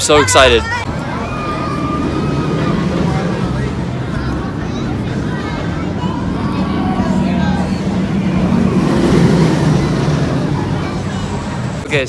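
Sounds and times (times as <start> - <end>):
crowd chatter: 0.0 - 12.0
roller coaster train rumbling: 0.1 - 12.0.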